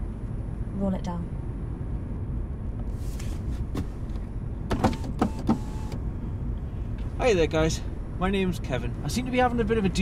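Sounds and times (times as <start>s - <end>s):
low rumble inside car: 0.0s - 10.0s
electric window clicks: 4.7s - 6.0s.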